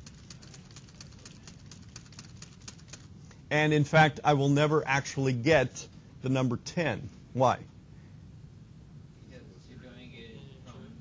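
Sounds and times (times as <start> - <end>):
keyboard keys clicking: 0.0 - 3.1.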